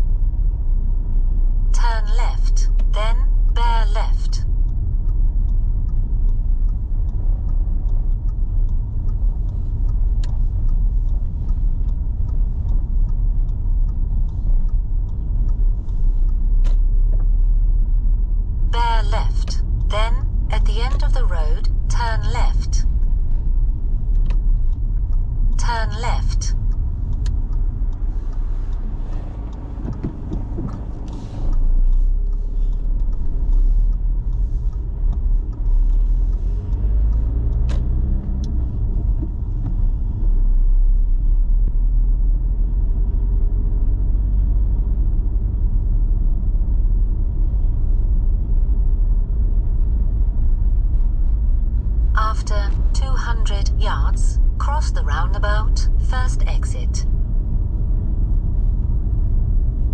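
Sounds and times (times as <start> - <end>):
road and engine rumble in car: 0.0 - 59.9.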